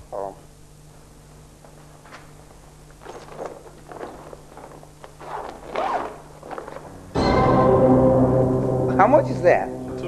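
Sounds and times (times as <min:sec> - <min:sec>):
zipper pulled open on plastic bag: 0:03.2 - 0:06.9.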